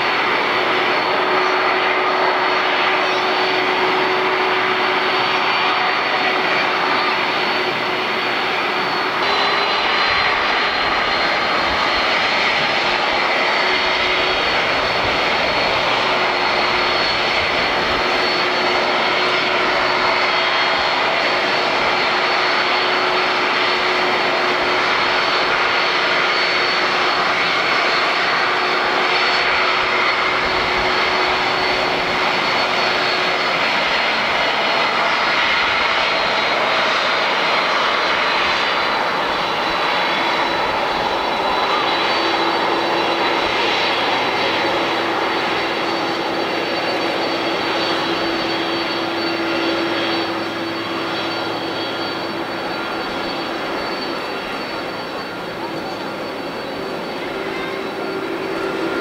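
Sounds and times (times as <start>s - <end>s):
jet engine rumble and whine: 0.0s - 59.0s.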